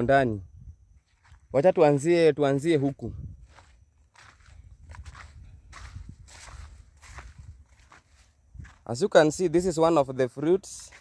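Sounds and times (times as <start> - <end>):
footsteps on dry grass: 0.9 - 11.0.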